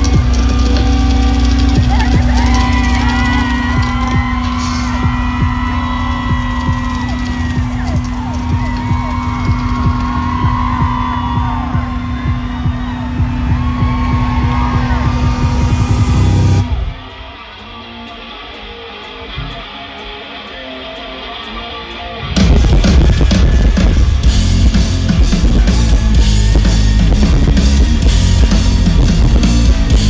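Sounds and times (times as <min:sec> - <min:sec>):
crowd yelling and whooping: 0:00.0 - 0:30.0
live rock music: 0:00.0 - 0:30.0.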